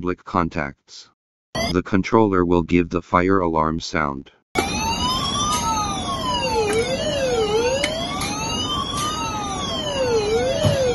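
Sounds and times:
fire alarm siren wailing: 0:01.6 - 0:01.8, 0:04.6 - 0:10.9.

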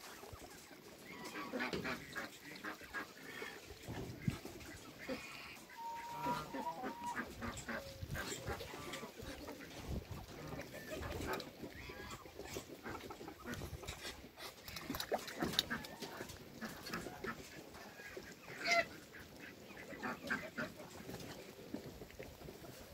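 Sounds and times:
ducks and poultry calling: 0:00.0 - 0:22.9.

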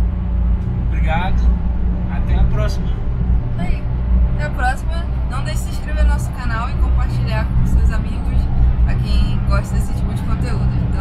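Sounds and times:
car road and engine rumble: 0:00.0 - 0:11.0
people talking: 0:01.0 - 0:01.5, 0:02.1 - 0:03.0, 0:03.6 - 0:03.8, 0:04.4 - 0:11.0.

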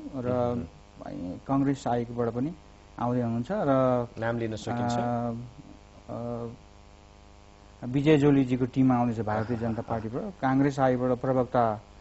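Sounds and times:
man speaking: 0:00.0 - 0:06.6, 0:07.8 - 0:11.8
faint mains hum: 0:00.0 - 0:12.0.

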